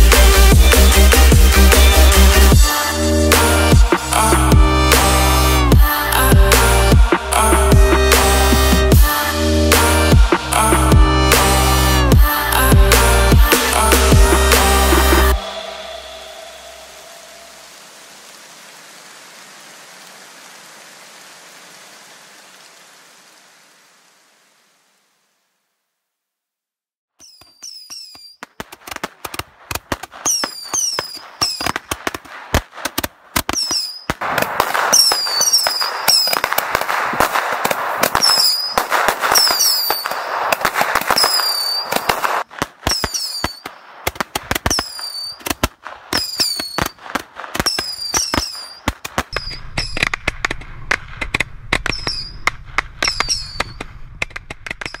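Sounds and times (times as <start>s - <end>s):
fireworks cracking and banging: 0.0s - 19.1s, 27.2s - 55.0s
low rumble: 3.8s - 18.6s, 49.4s - 55.0s
falling firework whistles: 13.5s - 18.9s, 27.2s - 32.8s, 33.4s - 50.9s, 51.7s - 54.0s, 54.6s - 55.0s.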